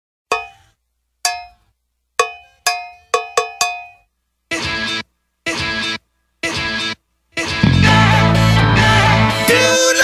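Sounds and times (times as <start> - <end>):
cowbell strikes: 0.3 - 0.7, 1.3 - 1.6, 2.2 - 4.0.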